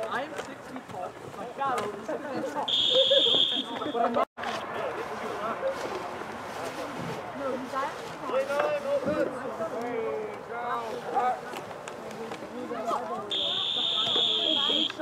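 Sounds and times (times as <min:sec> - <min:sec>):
voices calling out: 0:00.0 - 0:08.8, 0:10.4 - 0:15.0
referee's whistle: 0:02.7 - 0:04.0, 0:13.3 - 0:15.0.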